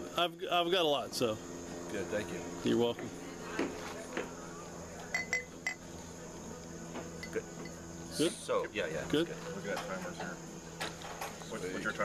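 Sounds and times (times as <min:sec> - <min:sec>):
glass clinking on glass: 0:05.1 - 0:05.8.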